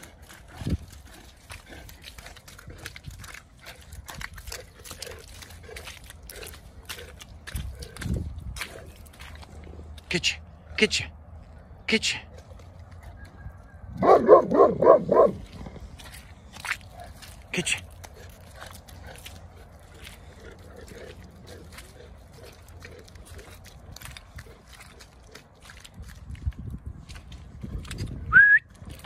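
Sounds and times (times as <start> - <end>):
footsteps on muddy grass: 0.0 - 29.0
dog barking: 14.0 - 15.4.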